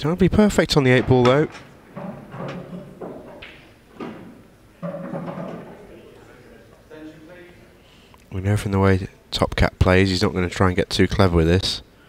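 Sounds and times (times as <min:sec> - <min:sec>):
soft knocks: 0:00.9 - 0:06.1
faint indistinct voices: 0:04.7 - 0:08.1.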